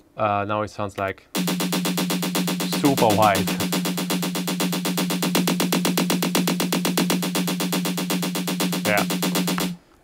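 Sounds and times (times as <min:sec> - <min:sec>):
low pulsing electronic note: 0:01.4 - 0:09.8.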